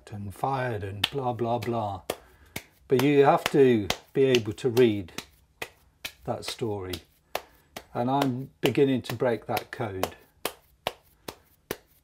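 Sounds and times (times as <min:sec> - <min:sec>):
hands slapping clay: 0:01.0 - 0:12.0.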